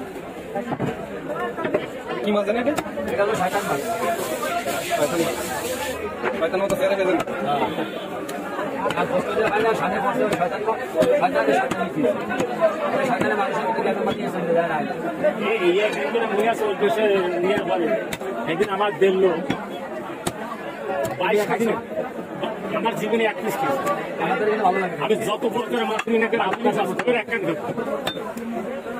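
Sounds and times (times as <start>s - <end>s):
crowd voices talking: 0.0s - 28.9s.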